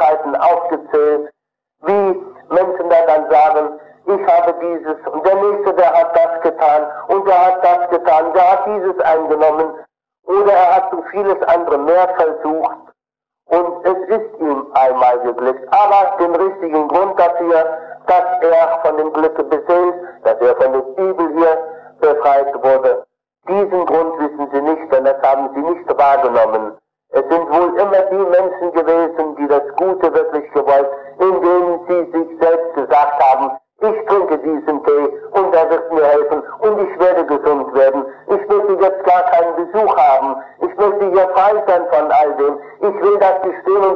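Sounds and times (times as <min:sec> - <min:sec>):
man talking on old tape: 0:00.0 - 0:12.9, 0:13.5 - 0:43.9.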